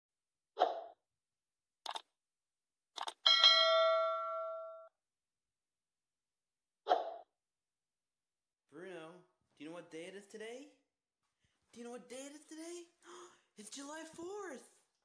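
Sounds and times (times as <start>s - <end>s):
bell ding: 3.3s - 4.9s.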